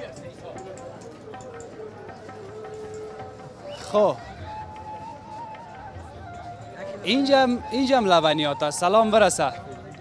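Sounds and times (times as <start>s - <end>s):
busy street ambience: 0.0s - 10.0s.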